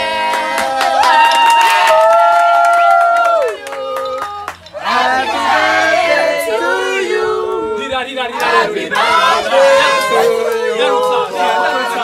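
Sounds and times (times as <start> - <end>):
people cheering: 0.0 - 6.0
hand clapping: 0.3 - 4.8
group singing unaccompanied: 4.7 - 12.0.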